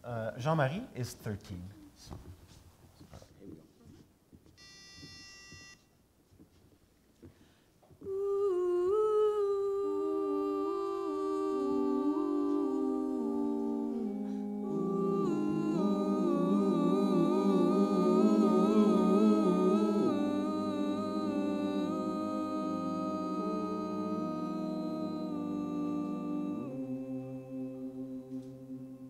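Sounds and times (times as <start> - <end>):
vocal group humming in harmony: 8.0 - 29.0.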